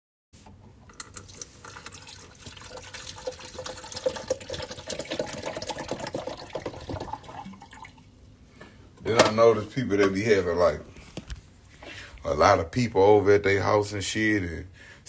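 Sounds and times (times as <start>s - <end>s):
water running and splashing: 1.2s - 8.0s.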